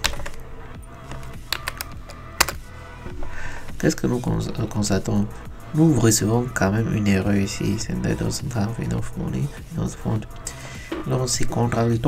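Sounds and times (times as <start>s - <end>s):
keyboard keys tapping: 0.0s - 2.6s.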